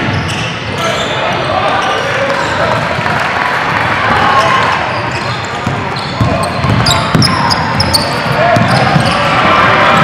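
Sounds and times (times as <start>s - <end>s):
players and spectators calling out: 0.0s - 10.0s
basketball bouncing on wooden court: 5.4s - 9.3s.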